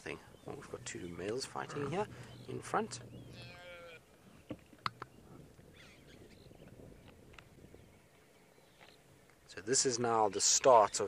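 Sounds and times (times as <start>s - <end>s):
impala lamb bleating: 1.5s - 2.1s, 3.2s - 4.0s
faint sharp clicks: 4.5s - 5.1s.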